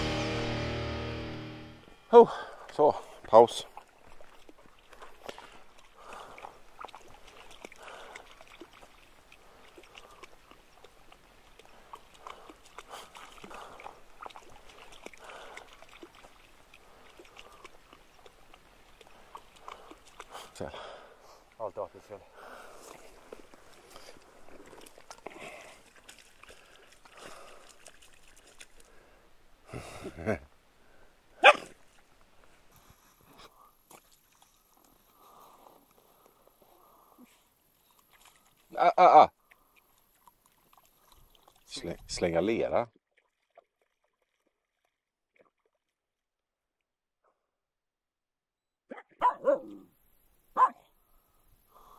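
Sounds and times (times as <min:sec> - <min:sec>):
dog splashing in shallow water: 0:03.5 - 0:20.7, 0:22.6 - 0:28.9, 0:36.9 - 0:46.0
dog barking sharply: 0:31.4 - 0:31.7, 0:48.9 - 0:49.8, 0:50.6 - 0:50.8.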